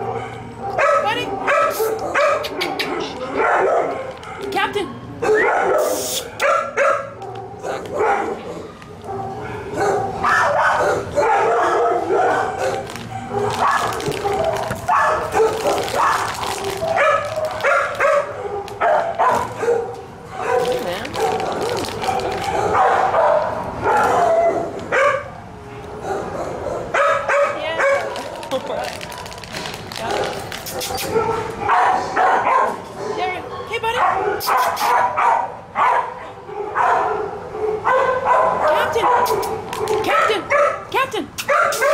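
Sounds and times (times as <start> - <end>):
dogs barking yipping and whining: 0.0 - 41.9.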